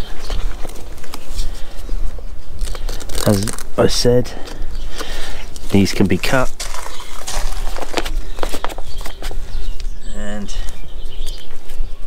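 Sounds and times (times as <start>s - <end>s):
strap clicks and rustles: 2.6s - 3.8s, 4.5s - 9.9s.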